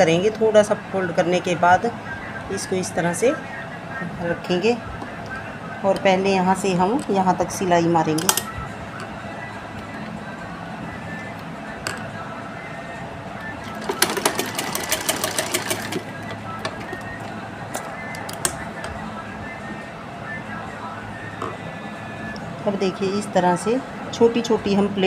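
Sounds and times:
sewing machine stitching: 13.7s - 16.1s.

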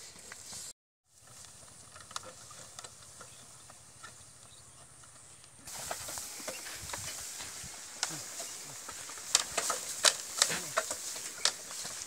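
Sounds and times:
hoof steps: 0.0s - 12.0s
wooden cart knocking: 8.0s - 12.0s.

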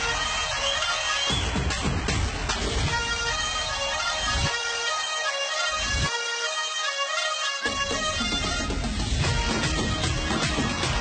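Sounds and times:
loud dance music with heavy bass: 0.0s - 6.1s, 7.7s - 11.0s.

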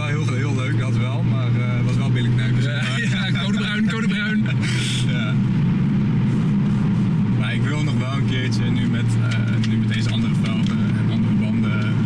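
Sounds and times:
car engine drone from cabin: 0.0s - 12.0s.

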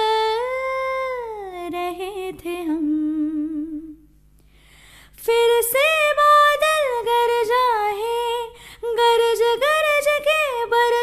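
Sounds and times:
woman singing: 0.0s - 4.1s, 5.2s - 11.0s
soft breath: 4.4s - 5.2s, 8.5s - 8.8s.

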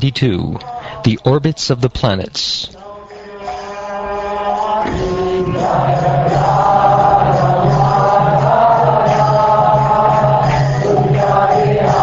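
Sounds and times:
group chanting mantra: 2.8s - 12.0s.

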